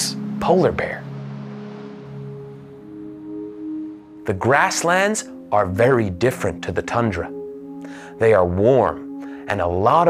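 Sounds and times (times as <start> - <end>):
soft music of held tones: 0.0 - 10.0.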